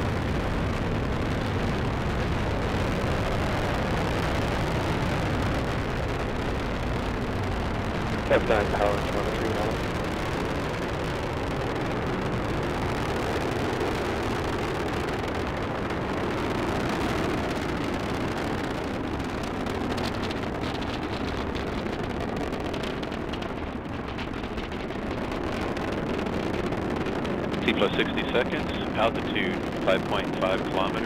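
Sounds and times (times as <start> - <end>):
distant rocket engine rumble: 0.0 - 31.0
faint crackling: 0.0 - 31.0.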